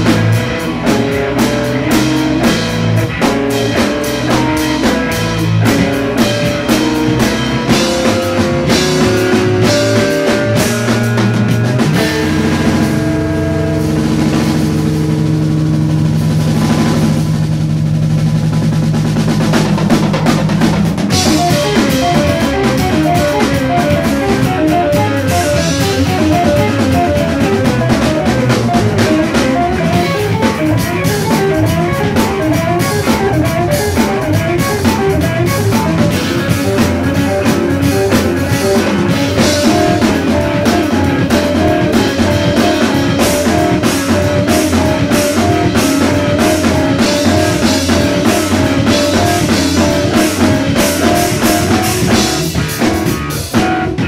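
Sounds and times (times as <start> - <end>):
busy drumming: 0.0 - 54.0
fast repeating guitar figure: 0.0 - 54.0
live rock band playing: 0.0 - 54.0.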